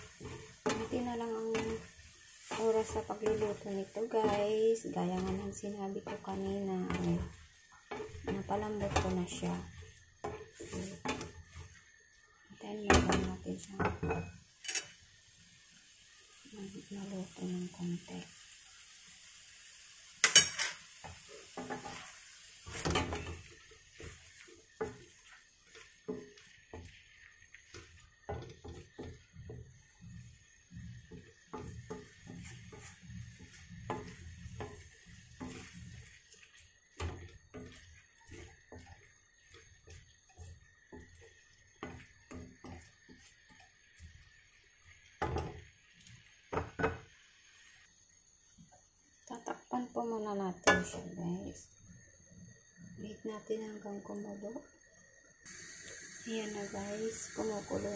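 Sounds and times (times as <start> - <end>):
spatula scraping metal pan: 0.0 - 11.8, 20.2 - 44.4.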